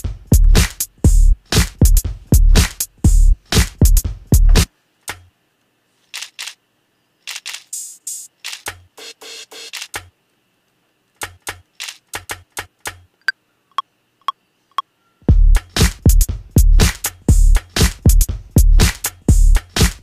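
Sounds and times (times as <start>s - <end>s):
drum loop with heavy kicks: 0.0s - 4.7s, 15.3s - 20.0s
drum machine sample hits: 0.0s - 4.7s, 15.3s - 20.0s.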